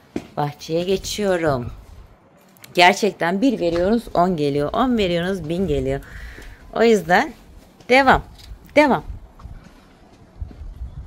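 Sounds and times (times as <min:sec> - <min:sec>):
wind rumble on microphone: 0:00.9 - 0:02.2, 0:03.7 - 0:11.0
footsteps on concrete: 0:03.5 - 0:10.8.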